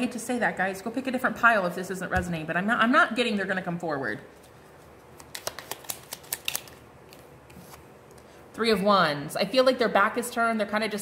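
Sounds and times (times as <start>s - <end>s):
cards clicking: 5.2s - 7.2s.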